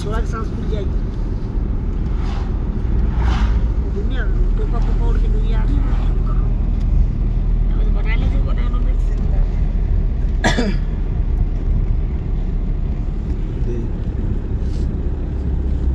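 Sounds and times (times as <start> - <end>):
car cabin engine and road noise: 0.0 - 15.9.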